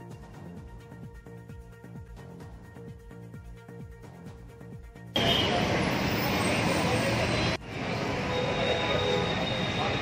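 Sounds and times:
traffic: 5.1 - 10.0.

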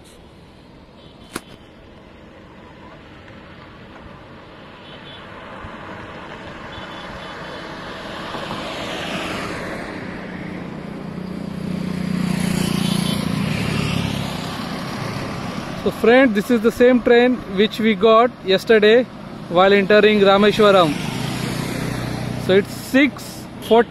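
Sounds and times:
road traffic passing: 0.0 - 23.9.

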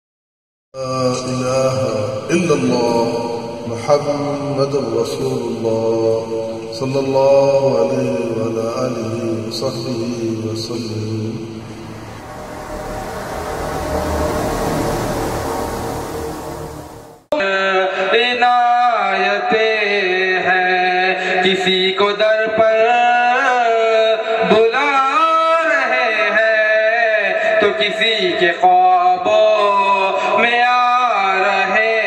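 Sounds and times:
chant-like vocal drone: 0.8 - 18.2
wash of sound: 11.0 - 17.3.

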